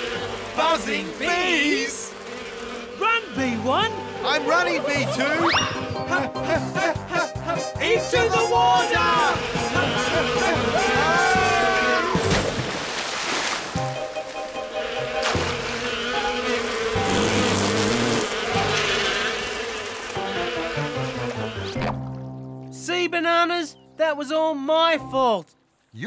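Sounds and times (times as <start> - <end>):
light background music: 0.0 - 12.7, 13.7 - 26.0
bees buzzing: 0.0 - 22.4.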